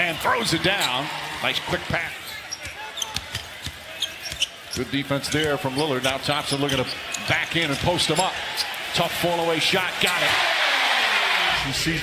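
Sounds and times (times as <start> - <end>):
arena crowd murmur: 0.0 - 12.0.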